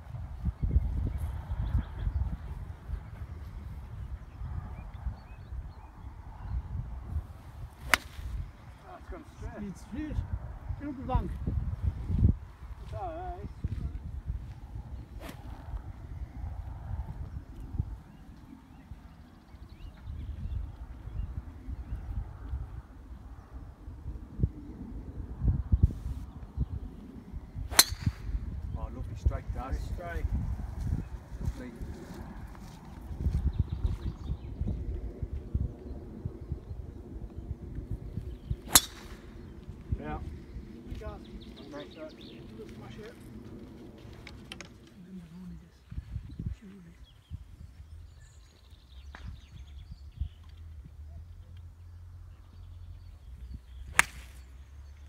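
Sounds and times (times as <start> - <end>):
wind buffeting microphone: 0.0 - 55.0
golf club striking ball: 7.8 - 8.2, 27.7 - 28.5, 38.6 - 39.4, 53.9 - 54.4.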